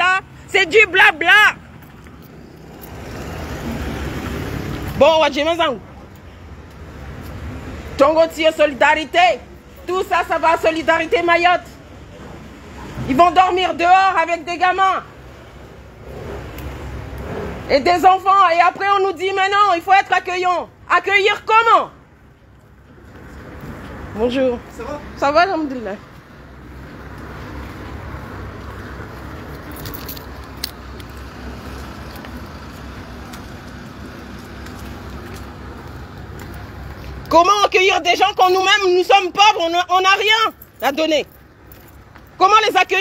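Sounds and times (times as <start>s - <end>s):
low rumble of road traffic: 0.0s - 43.0s.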